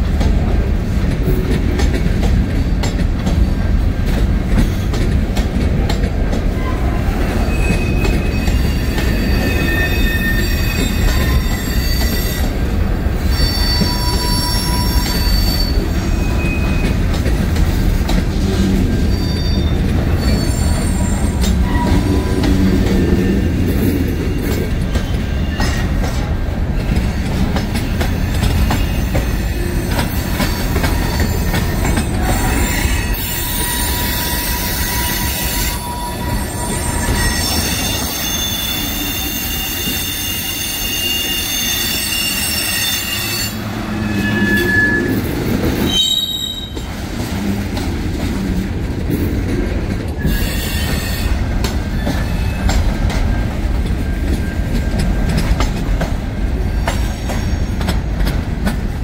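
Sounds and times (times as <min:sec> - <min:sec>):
train wheels rumbling on rail: 0:00.0 - 0:59.0
high wheel squeals: 0:06.6 - 0:12.6, 0:13.2 - 0:17.0, 0:19.0 - 0:25.9, 0:28.1 - 0:46.8.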